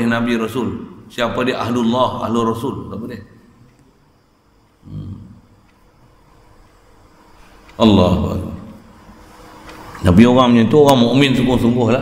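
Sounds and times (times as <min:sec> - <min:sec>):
man humming hmm: 0:04.8 - 0:05.5.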